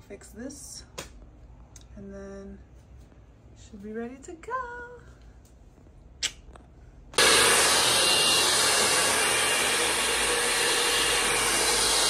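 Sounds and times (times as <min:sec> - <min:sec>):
faint motor hum: 0:01.5 - 0:12.0
hair dryer blowing air: 0:07.2 - 0:12.0.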